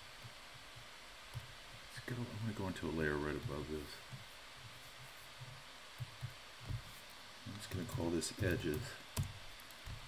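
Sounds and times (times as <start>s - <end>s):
faint room tone hiss: 0.0s - 10.0s.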